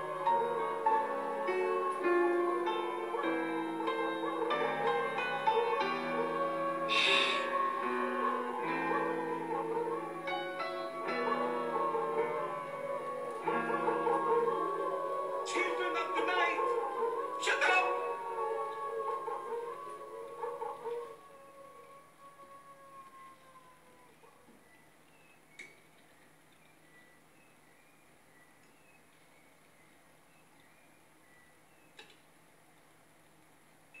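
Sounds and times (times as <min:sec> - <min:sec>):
wolves howling: 0:00.0 - 0:24.7
background hiss: 0:00.0 - 0:34.0
faint clicks: 0:31.9 - 0:34.0.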